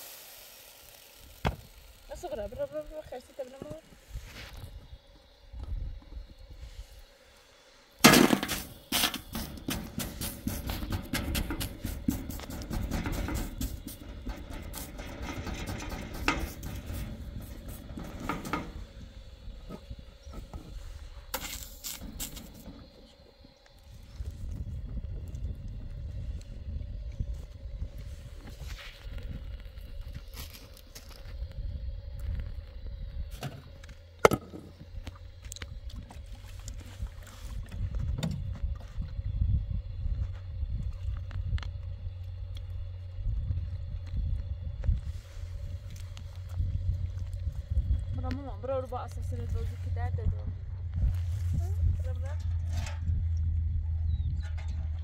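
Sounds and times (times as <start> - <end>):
wind rumble on microphone: 2.1 - 7.0, 9.3 - 21.4, 22.1 - 55.0.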